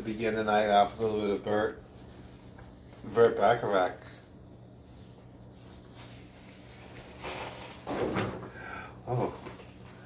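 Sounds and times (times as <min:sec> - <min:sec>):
paper sheets rustling: 0:00.0 - 0:08.4.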